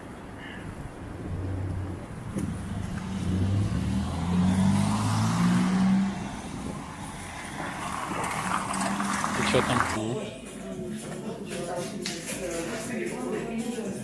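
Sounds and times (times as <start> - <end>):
car driving past: 0.4 - 10.1.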